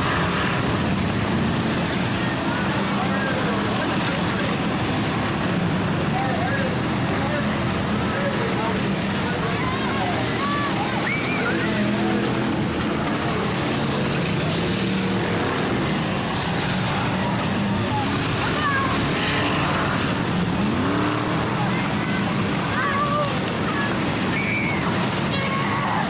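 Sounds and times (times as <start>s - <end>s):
race car engines running hard: 0.0s - 26.0s.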